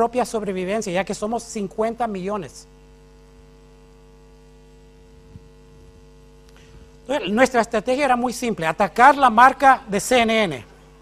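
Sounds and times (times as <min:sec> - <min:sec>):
low electrical mains hum: 0:00.0 - 0:11.0.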